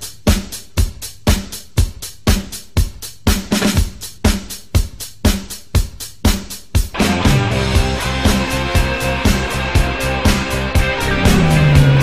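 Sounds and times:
drum kit playing rock beat: 0:00.0 - 0:12.0.

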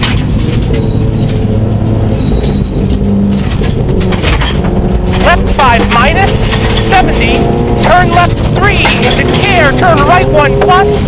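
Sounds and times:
car engine at speed: 0:00.0 - 0:11.0
gravel and tyre noise: 0:00.0 - 0:11.0.

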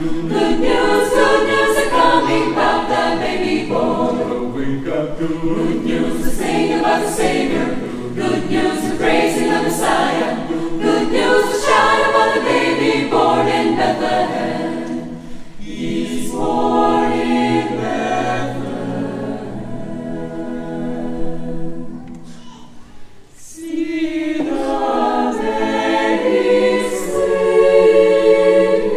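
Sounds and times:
mixed choir singing: 0:00.0 - 0:22.4, 0:23.3 - 0:28.9.

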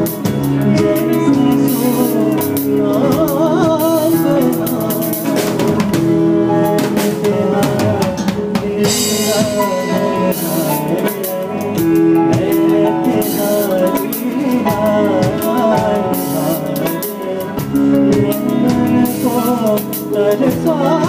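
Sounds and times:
drum kit playing loud: 0:00.0 - 0:21.0
live band music: 0:00.0 - 0:21.0.

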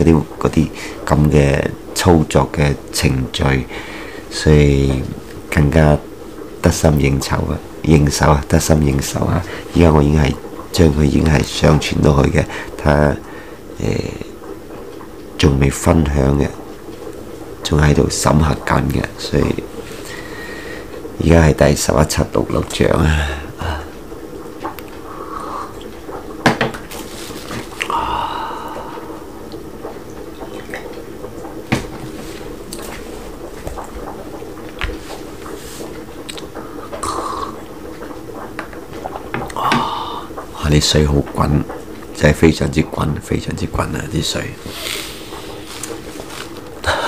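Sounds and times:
water boiling hard: 0:00.0 - 0:47.0.

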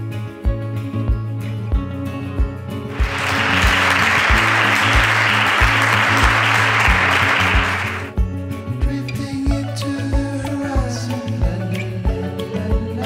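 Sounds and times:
background music with beat: 0:02.5 - 0:13.0
audience applause: 0:02.9 - 0:08.1.

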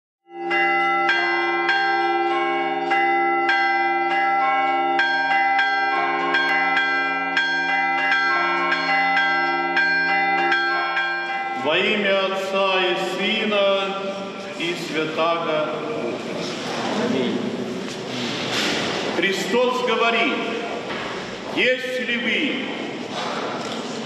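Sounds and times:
church bells ringing: 0:00.3 - 0:16.3, 0:19.1 - 0:23.1.

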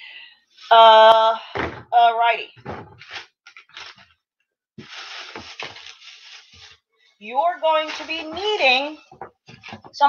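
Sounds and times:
grocery bag crinkling: 0:04.8 - 0:06.8
soft knocks of items moved: 0:07.8 - 0:10.0.

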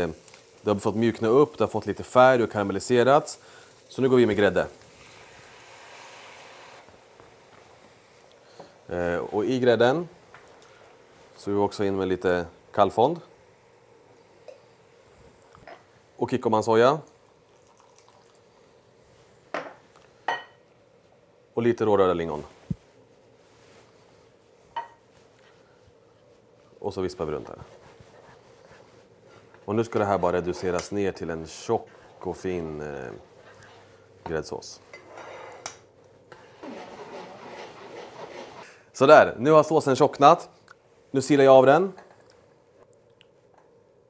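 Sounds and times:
sauce simmering in a frying pan: 0:00.0 - 0:06.8
sauce pouring into a pan: 0:17.1 - 0:18.6.

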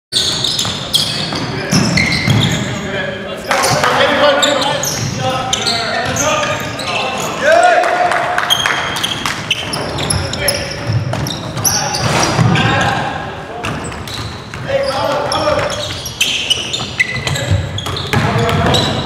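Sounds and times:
sneakers squeaking: 0:00.1 - 0:07.5, 0:08.4 - 0:19.0
basketball bouncing: 0:17.1 - 0:19.0.

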